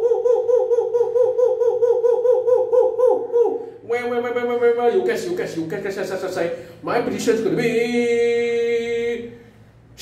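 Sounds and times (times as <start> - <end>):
man chanting high hoots: 0.0 - 4.8.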